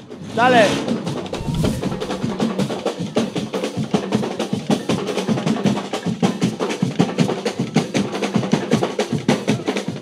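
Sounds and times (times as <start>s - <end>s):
marching drum band: 0.0s - 10.0s.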